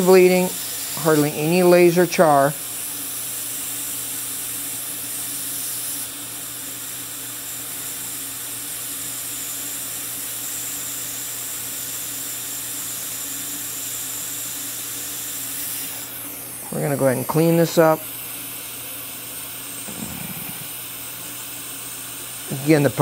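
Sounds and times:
steady hiss: 0.0s - 6.1s, 19.9s - 21.2s.

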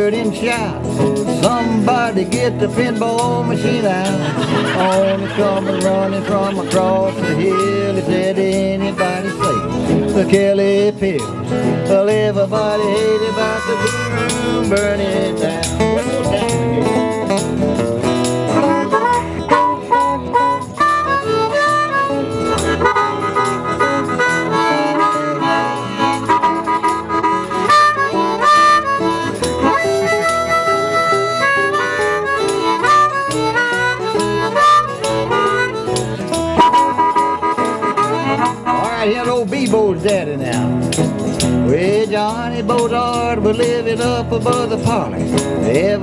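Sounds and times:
live country band instrumental: 0.0s - 46.0s.

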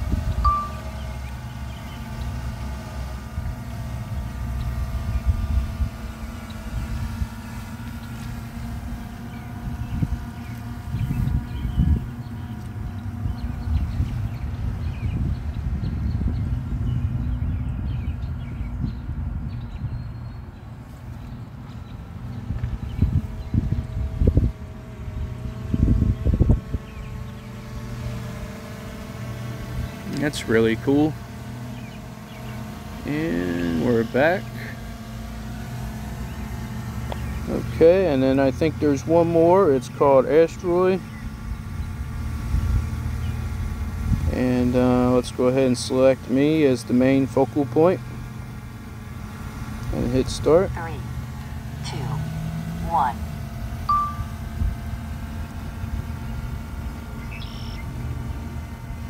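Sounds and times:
wind rumble on microphone: 0.0s - 33.3s, 40.3s - 45.4s, 49.2s - 59.0s
drone propellers whining: 0.0s - 59.0s.

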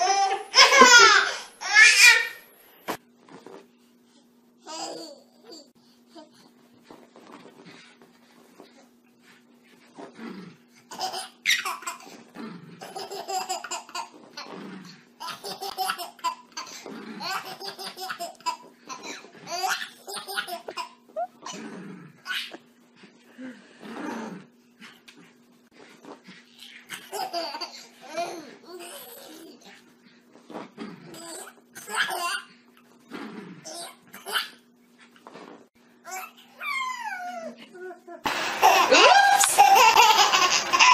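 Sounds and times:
baby laughing: 0.0s - 2.4s, 4.7s - 5.7s, 10.9s - 12.1s, 12.8s - 14.5s, 15.2s - 21.6s, 26.9s - 29.6s, 33.8s - 34.6s, 38.6s - 40.9s.

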